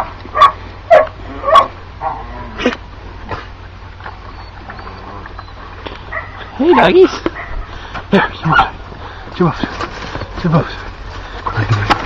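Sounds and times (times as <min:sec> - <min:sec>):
dogs barking and yipping: 0:00.0 - 0:02.7, 0:03.3 - 0:09.2.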